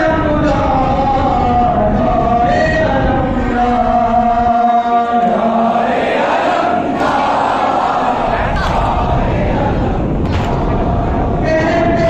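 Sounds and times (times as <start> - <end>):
crowd of men chanting a lament: 0.0 - 12.0.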